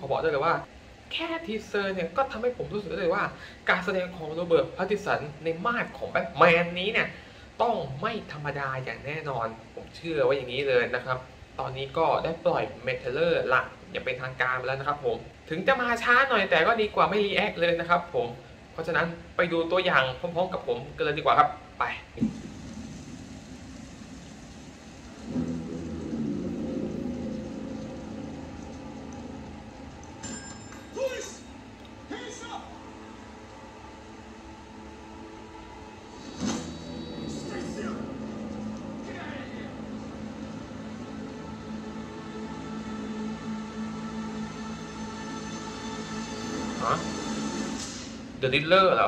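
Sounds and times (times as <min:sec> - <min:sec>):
low dark rumbling drone: 0:22.2 - 0:30.2, 0:32.8 - 0:47.9
low droning note: 0:25.2 - 0:29.8.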